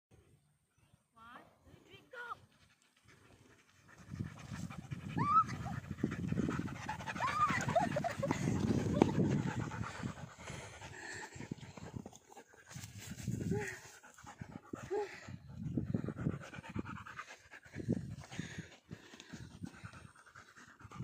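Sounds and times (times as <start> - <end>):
dog panting: 2.4 - 21.0.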